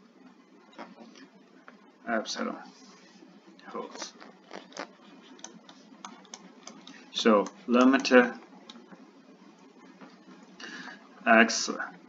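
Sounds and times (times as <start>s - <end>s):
stylus tapping on tablet screen: 5.2s - 9.0s.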